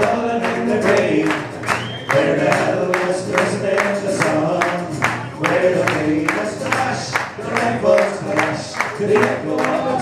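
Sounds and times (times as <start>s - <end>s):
folk band playing: 0.0s - 10.0s.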